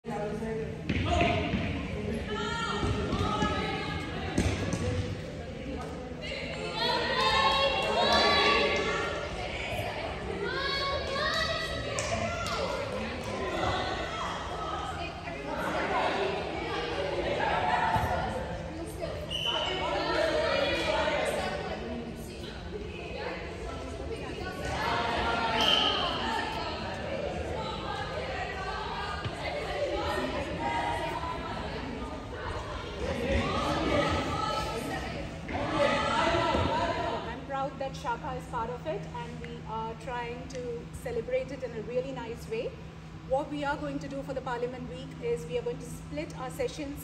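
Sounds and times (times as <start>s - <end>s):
voices chattering in echoing hall: 0.0s - 47.0s.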